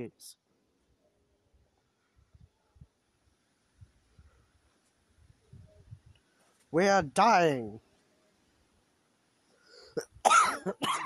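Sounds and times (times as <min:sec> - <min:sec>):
man coughing: 0:10.0 - 0:11.0.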